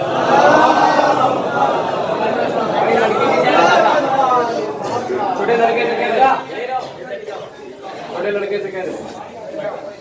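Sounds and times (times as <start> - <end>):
men talking at once: 0.0 - 10.0.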